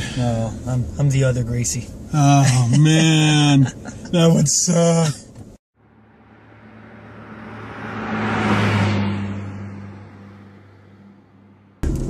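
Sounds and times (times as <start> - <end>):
car passing by: 5.8 - 11.8.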